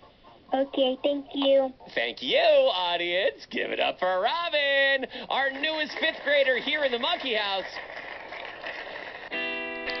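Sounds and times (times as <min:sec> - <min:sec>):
guitar chord ringing: 0:09.3 - 0:10.0.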